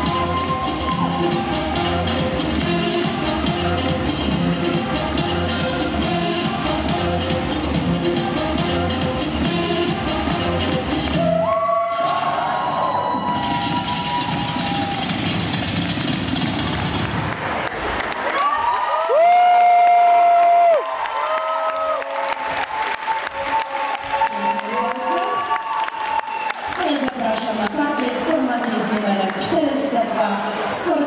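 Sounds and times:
audience cheering: 0.0 - 2.1, 11.1 - 15.6, 16.6 - 27.0
dance music: 0.0 - 17.3.

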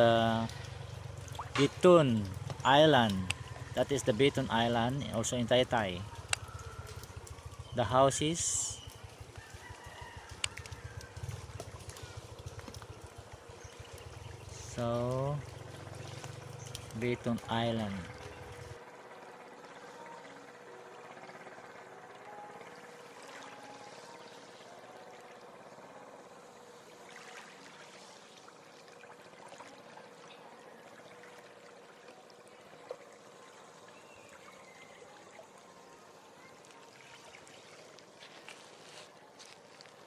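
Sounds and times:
small waves lapping on shore: 0.0 - 20.7, 21.4 - 40.0
faint steady hum: 0.0 - 40.0.

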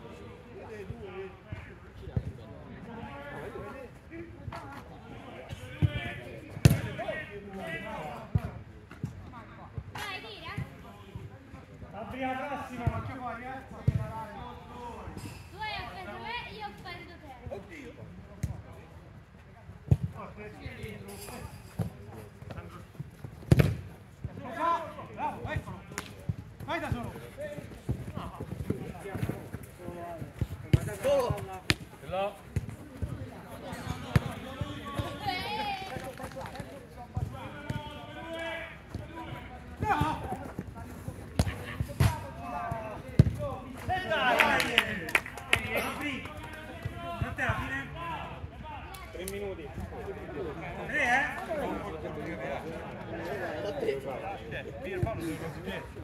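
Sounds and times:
football kicked and bouncing: 5.8 - 7.0, 12.7 - 13.1, 13.8 - 14.1, 19.8 - 20.2, 21.7 - 24.5, 25.3 - 36.2, 37.1 - 38.0, 38.9 - 43.9
players shouting: 33.6 - 36.2, 37.2 - 40.6, 41.4 - 49.1.

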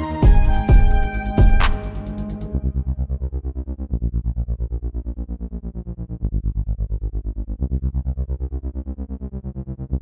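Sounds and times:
stuttering synth bass line: 0.0 - 3.4.

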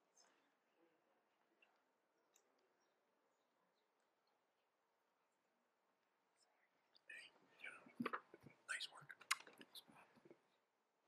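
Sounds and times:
faint whispered voices: 0.0 - 4.4, 6.2 - 10.6.

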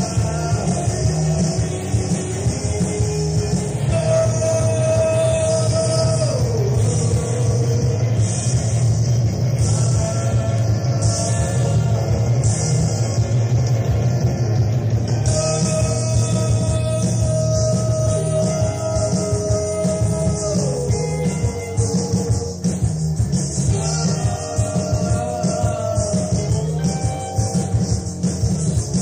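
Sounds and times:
rock band playing live: 0.0 - 29.0.

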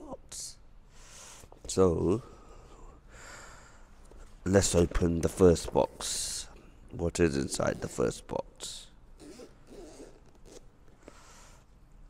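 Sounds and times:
zipper unzipping: 9.2 - 10.7.

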